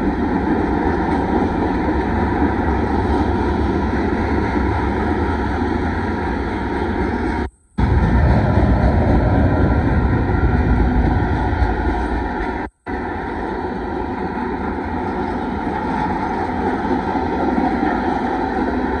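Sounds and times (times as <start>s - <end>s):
freight train wheels rumbling on rails: 0.0s - 19.0s.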